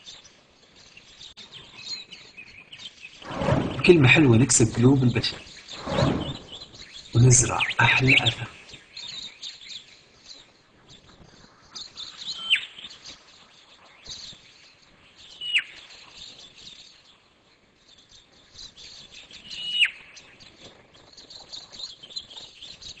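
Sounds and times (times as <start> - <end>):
birds chirping and twittering: 0.0 - 23.0.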